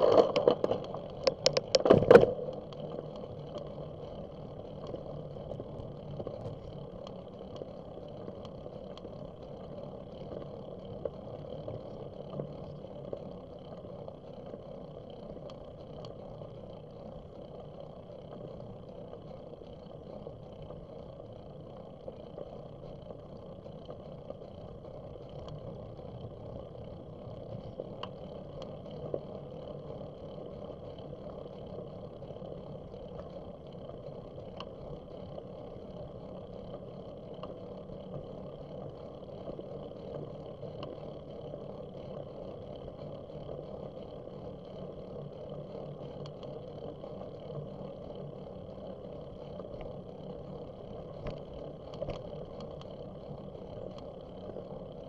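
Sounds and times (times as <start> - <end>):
bicycle tyre noise: 0.0 - 55.0
faint clicks: 0.0 - 55.0.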